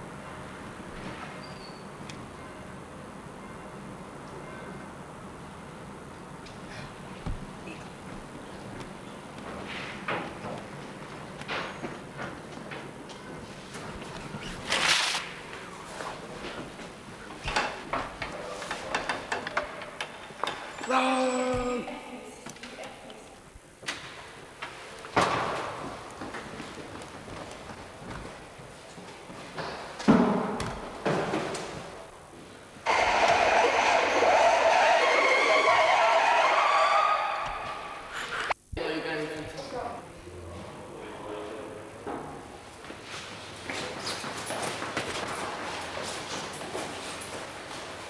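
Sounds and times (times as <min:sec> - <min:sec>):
running footsteps on hard floor: 0:06.6 - 0:14.6, 0:25.3 - 0:32.0.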